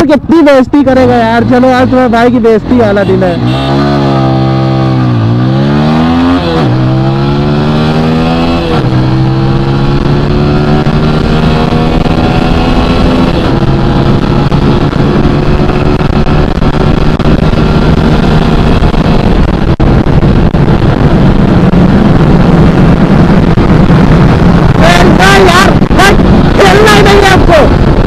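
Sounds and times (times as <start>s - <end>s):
motorcycle engine at full throttle: 0.8s - 28.0s.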